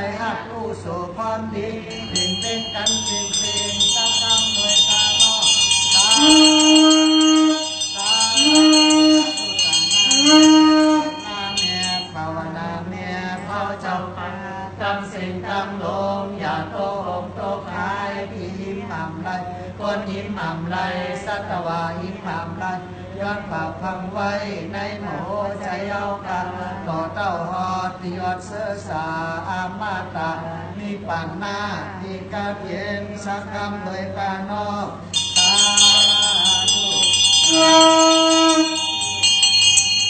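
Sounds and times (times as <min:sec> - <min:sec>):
voices chanting: 0:01.6 - 0:12.2, 0:35.2 - 0:40.0.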